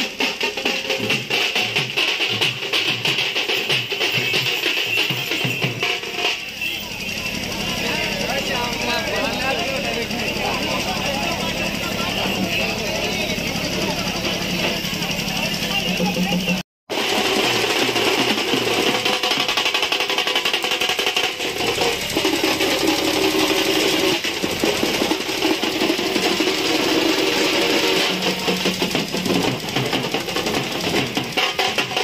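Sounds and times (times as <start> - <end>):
drumming: 0.0 - 32.0
festival procession music: 0.0 - 32.0
noisy crowd of voices: 4.8 - 16.6, 20.8 - 32.0.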